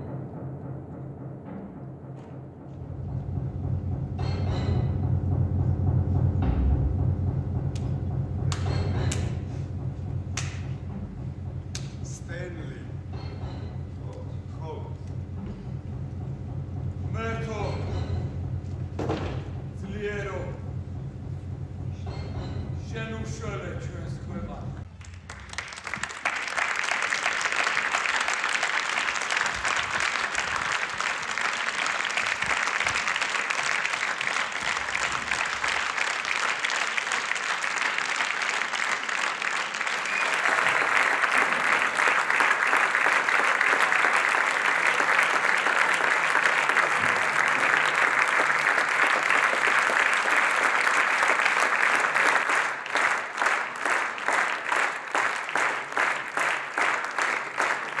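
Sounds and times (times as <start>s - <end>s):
rhythmic clapping: 2.2s - 58.0s
audience applauding: 24.9s - 58.0s.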